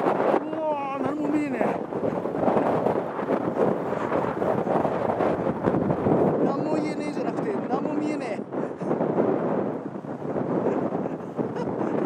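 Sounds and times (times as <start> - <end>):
gusty wind on microphone: 0.0 - 12.0.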